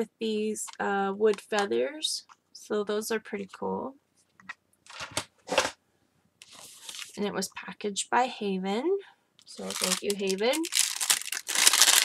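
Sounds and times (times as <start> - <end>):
paper and plastic rustling: 6.4 - 7.2, 9.5 - 12.0.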